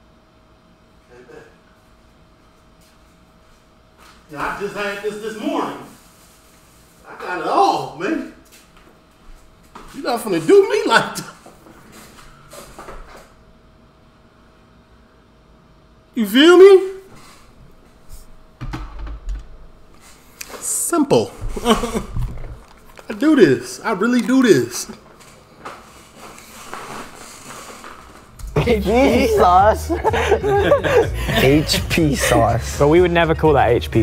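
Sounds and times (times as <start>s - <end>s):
faint steady hum: 0.0s - 34.0s.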